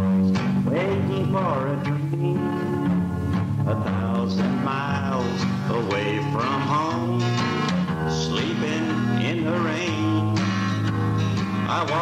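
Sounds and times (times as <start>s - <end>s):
country music on guitar and bass: 0.0s - 12.0s.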